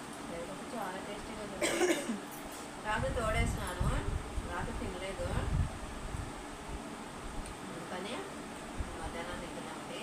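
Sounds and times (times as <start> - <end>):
person coughing: 1.6 - 2.2.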